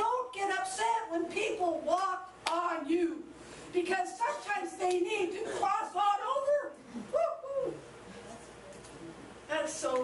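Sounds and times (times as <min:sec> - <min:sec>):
woman vocalizing: 0:06.8 - 0:07.8.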